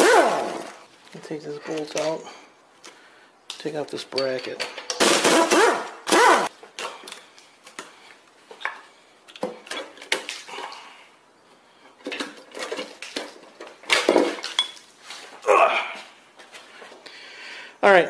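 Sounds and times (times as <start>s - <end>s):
metal engine parts clinking: 12.1s - 14.8s.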